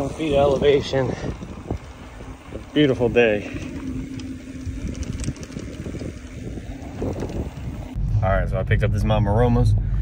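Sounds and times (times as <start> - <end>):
bike rattles and clicks: 0.0 - 8.0
wind buffeting microphone: 0.0 - 8.2.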